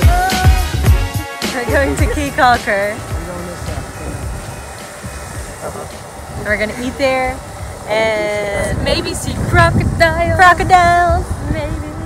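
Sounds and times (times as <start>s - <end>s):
faint voices: 1.5s - 12.0s
boat engine idling: 1.6s - 12.0s
wind buffeting microphone: 1.6s - 12.0s.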